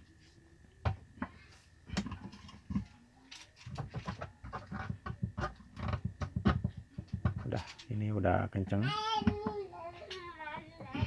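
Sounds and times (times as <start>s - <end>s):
clicks and scrapes in plastic tub: 1.9s - 7.9s.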